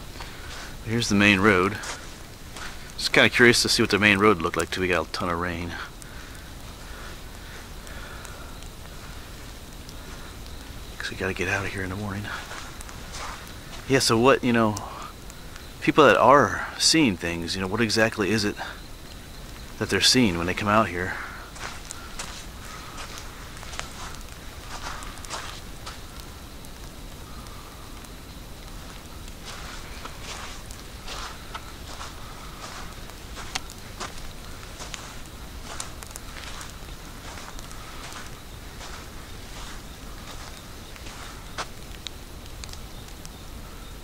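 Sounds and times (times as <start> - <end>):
footsteps on sandy dirt road: 0.0 - 3.2, 6.8 - 13.9, 20.4 - 26.3, 28.6 - 41.8.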